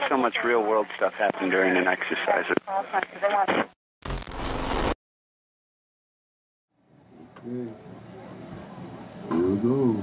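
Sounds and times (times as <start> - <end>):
transition noise burst with thump: 4.1 - 5.0.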